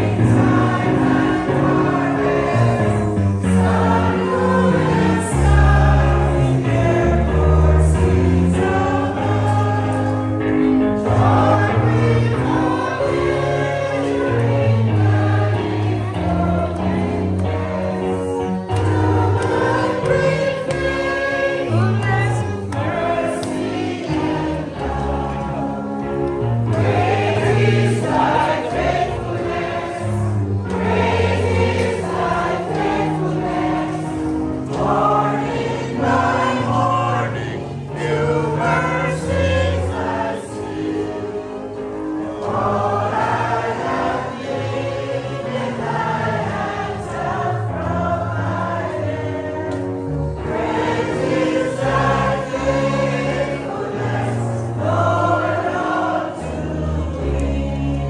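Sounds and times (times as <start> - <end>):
group singing a hymn: 0.0 - 58.0.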